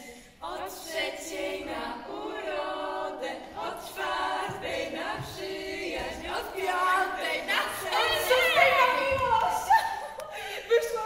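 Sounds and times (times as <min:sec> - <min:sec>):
choir singing unaccompanied: 0:00.0 - 0:10.0.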